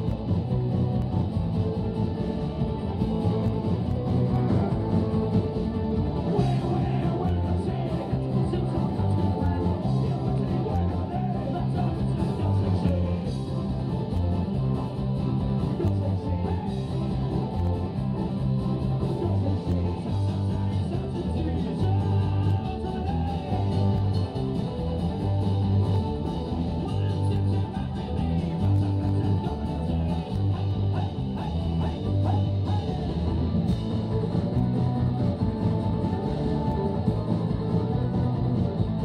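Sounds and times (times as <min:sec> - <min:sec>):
live band with guitars: 0:00.0 - 0:39.0
strong bass line: 0:00.0 - 0:39.0.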